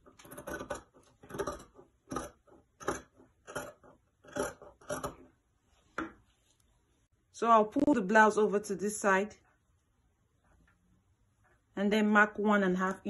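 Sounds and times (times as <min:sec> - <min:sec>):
scissors snipping fabric: 0:00.0 - 0:05.3.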